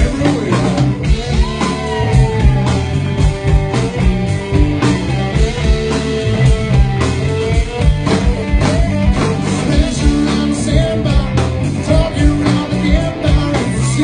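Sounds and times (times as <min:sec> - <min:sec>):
live rock band playing: 0:00.0 - 0:14.0.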